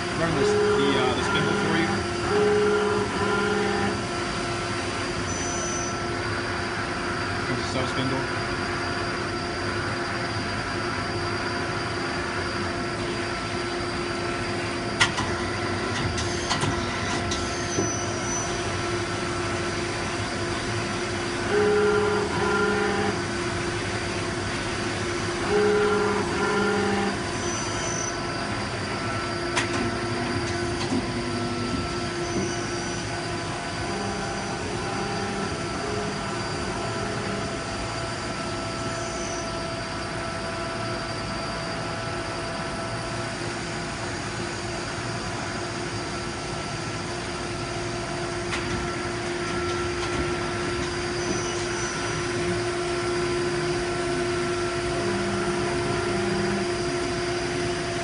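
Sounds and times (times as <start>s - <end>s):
louder humming tone: 0.0s - 16.0s, 16.7s - 58.0s
machine whine: 0.0s - 58.0s.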